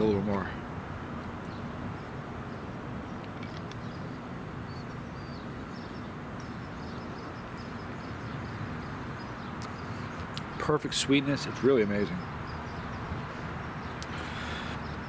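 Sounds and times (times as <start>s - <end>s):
birds chirping: 0.0s - 15.0s
distant traffic hum: 0.0s - 15.0s.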